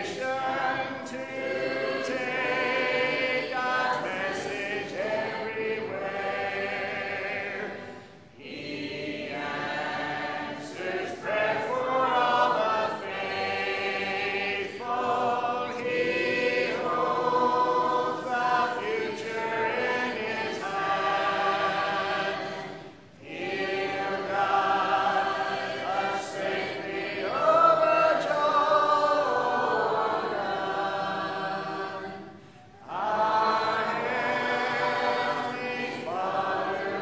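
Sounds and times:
congregation singing a hymn: 0.0 - 37.0.

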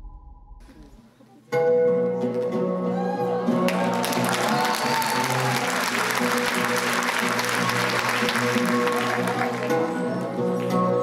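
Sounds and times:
music from stage: 0.6 - 11.0
audience applauding: 3.5 - 11.0.

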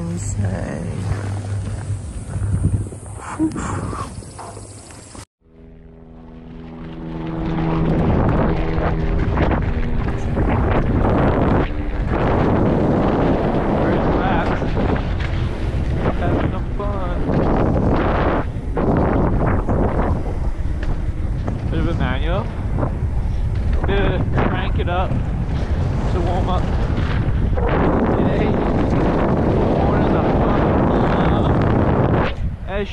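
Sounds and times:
wind rushing over microphone: 0.0 - 5.3, 6.6 - 32.9
bike tyres rattling over dirt: 6.7 - 32.6.

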